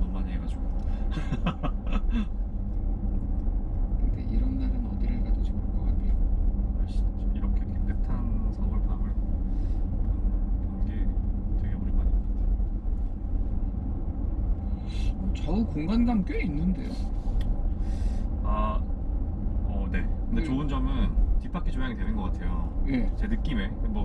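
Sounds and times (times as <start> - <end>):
road and tyre rumble in car: 0.0 - 24.0.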